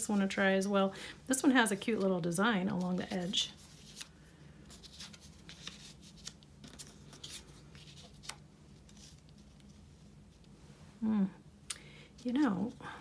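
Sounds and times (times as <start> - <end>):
low steady hum: 0.0 - 13.0
paper rustling: 1.4 - 10.5.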